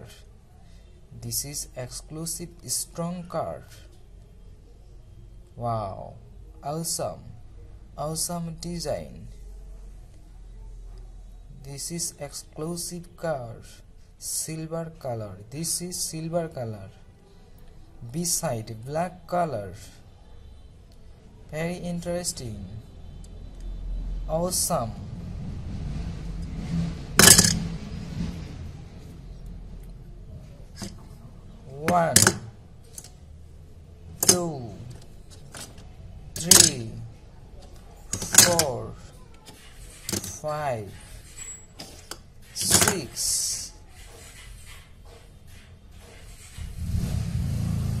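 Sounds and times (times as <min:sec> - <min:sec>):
toy car clattering in ceramic bowl: 0:27.2 - 0:27.7, 0:38.1 - 0:38.7, 0:40.0 - 0:40.4.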